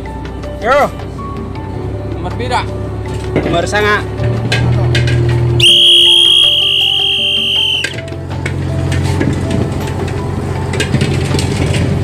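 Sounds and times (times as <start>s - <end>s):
boat engine humming: 0.0s - 12.0s
high-pitched whistle: 5.6s - 8.0s.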